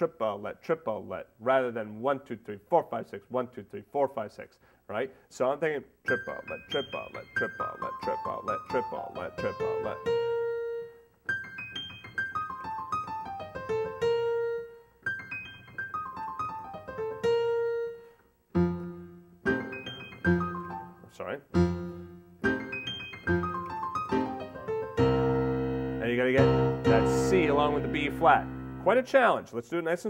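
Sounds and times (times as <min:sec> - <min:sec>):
piano playing: 0:06.1 - 0:29.2.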